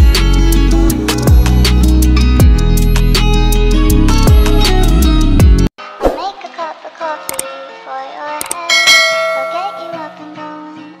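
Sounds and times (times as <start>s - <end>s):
bright ding: 8.7s - 10.1s
chiming outro jingle: 8.7s - 10.2s.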